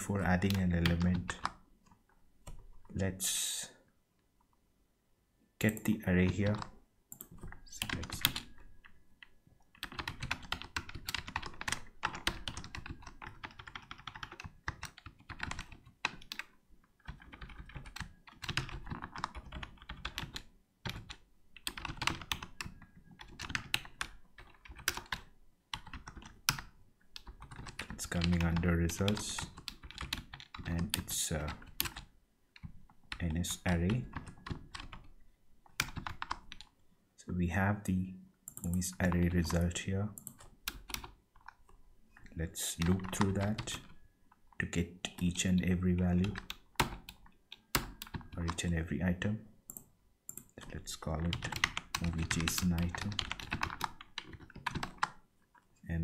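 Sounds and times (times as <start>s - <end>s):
typing on computer keyboard: 5.6s - 36.7s, 38.5s - 44.0s, 46.2s - 48.7s, 49.7s - 55.2s.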